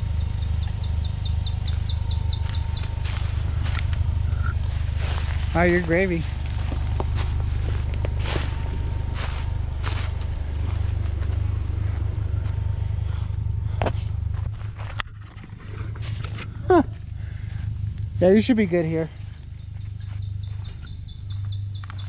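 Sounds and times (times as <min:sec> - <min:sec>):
truck engine running low: 0:00.0 - 0:22.0
footsteps crunching on rock: 0:01.6 - 0:17.8, 0:19.7 - 0:22.0.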